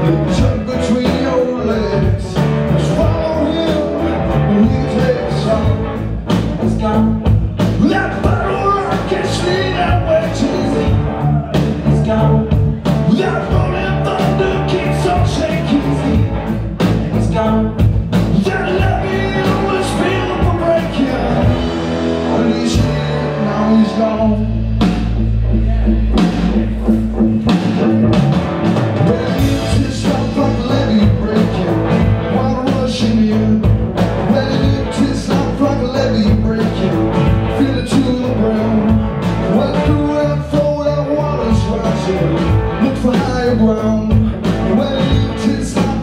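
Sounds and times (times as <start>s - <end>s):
bass guitar: 0.0s - 46.0s
drum kit: 0.0s - 46.0s
electric guitars: 0.0s - 46.0s
lead vocal singing: 7.8s - 25.0s, 28.8s - 46.0s.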